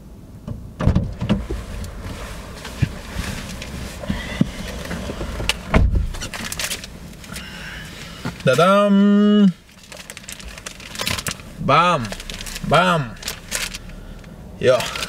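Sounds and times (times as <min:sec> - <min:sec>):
car door shutting thump: 0:00.4 - 0:01.6, 0:04.1 - 0:06.3
car door opening: 0:00.4 - 0:07.3
paper roll rustling: 0:01.4 - 0:05.5, 0:06.1 - 0:07.4, 0:09.7 - 0:13.9.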